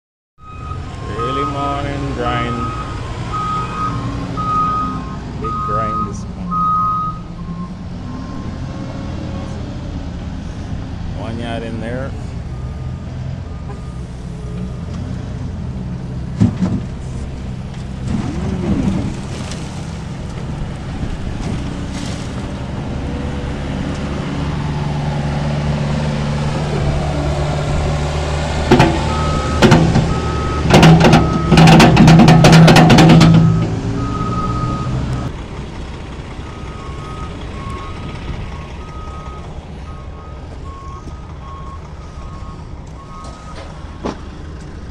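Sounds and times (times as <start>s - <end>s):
reversing alarm beeping: 0.4s - 8.7s, 29.0s - 31.7s, 33.4s - 35.3s, 36.5s - 43.6s
diesel engine running: 0.6s - 44.9s
soil pouring into steel truck bed: 18.0s - 20.2s, 21.8s - 22.6s.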